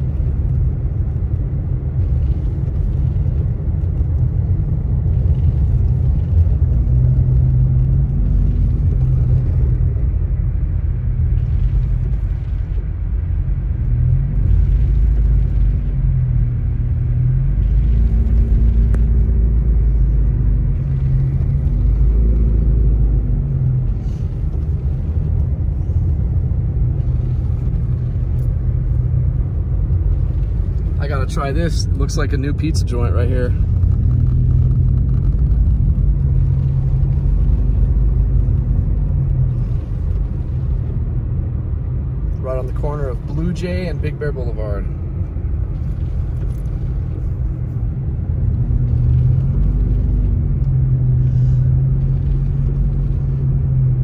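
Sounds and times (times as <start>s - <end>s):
car engine and tyres rumble: 0.0s - 54.0s.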